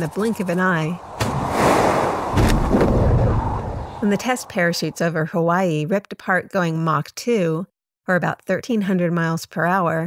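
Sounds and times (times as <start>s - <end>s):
deep rumble: 0.0s - 5.2s
rushing whoosh: 0.0s - 5.2s
sharp bang: 1.1s - 3.4s.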